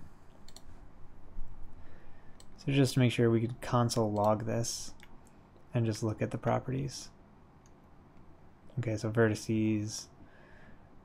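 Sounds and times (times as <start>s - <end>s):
low room noise: 0.0s - 11.0s.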